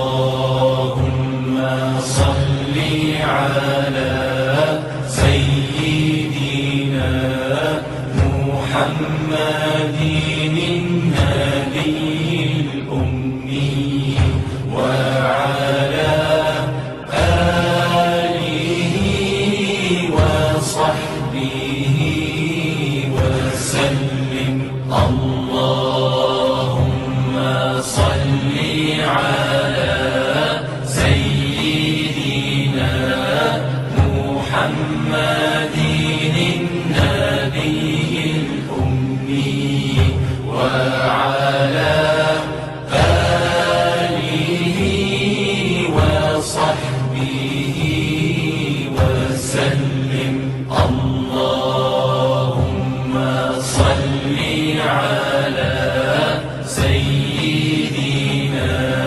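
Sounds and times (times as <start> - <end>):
steady low drone: 0.0 - 59.0.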